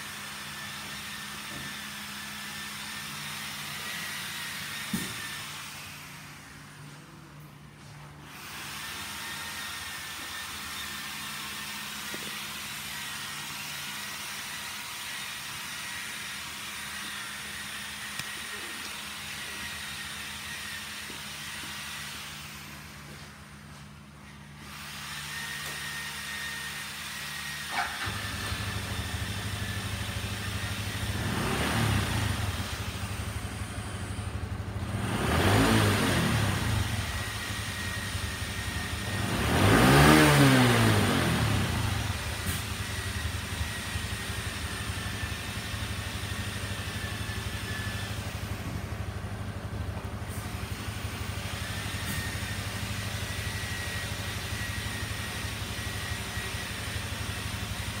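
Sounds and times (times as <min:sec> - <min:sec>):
motorcycle engine idling and revving: 0:00.0 - 0:58.0.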